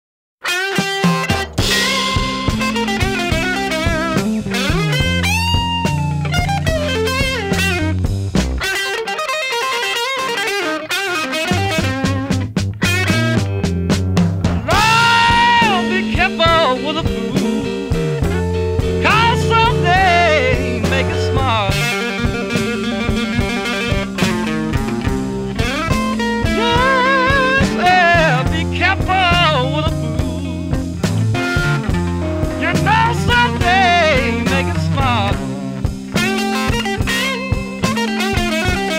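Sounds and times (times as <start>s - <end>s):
drums: 0.4s - 38.9s
electric blues guitar lead: 0.4s - 38.9s
bass: 1.0s - 8.8s, 11.5s - 38.9s.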